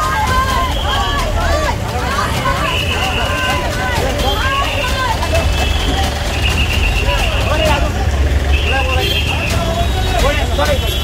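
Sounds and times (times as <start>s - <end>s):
bus engine idling: 0.0s - 11.0s
people's voices: 0.0s - 11.0s.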